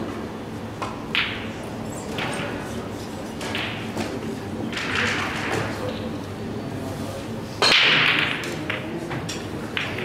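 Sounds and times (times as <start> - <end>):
cue ball break crack: 0.8 - 1.6, 3.5 - 5.8, 7.6 - 10.0
pool balls clattering: 3.4 - 6.1, 7.6 - 10.0.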